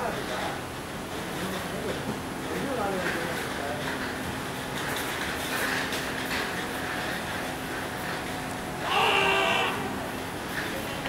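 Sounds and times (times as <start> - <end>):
outdoor background noise: 0.0 - 11.0
person calling from afar: 8.8 - 10.0.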